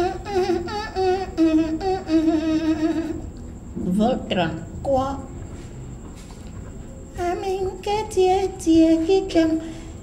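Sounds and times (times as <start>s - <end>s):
man humming a tune: 0.0s - 3.4s.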